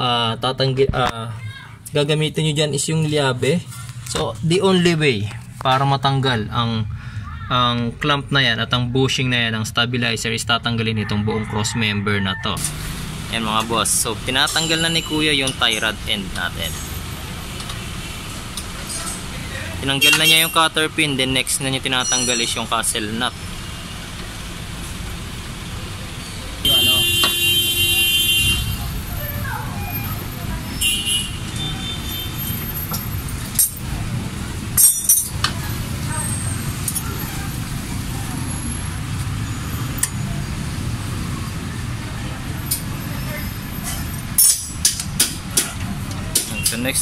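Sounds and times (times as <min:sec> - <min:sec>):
street traffic rumble: 0:00.0 - 0:47.0
high tone: 0:21.9 - 0:23.1.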